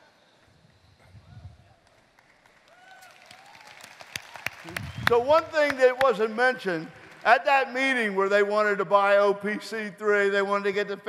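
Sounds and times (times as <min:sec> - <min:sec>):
audience applause: 0:02.1 - 0:07.6.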